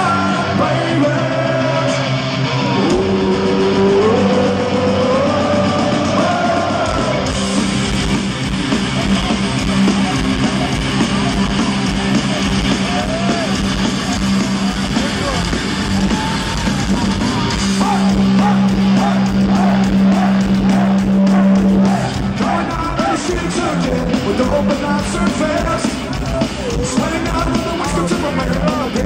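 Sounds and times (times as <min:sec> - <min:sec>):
drums: 0:00.0 - 0:29.0
electric guitars bending melody: 0:00.0 - 0:29.0.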